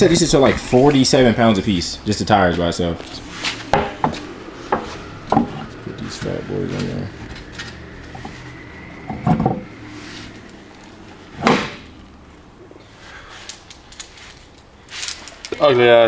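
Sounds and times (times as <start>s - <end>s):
faint steady high tone: 1.3s - 11.4s.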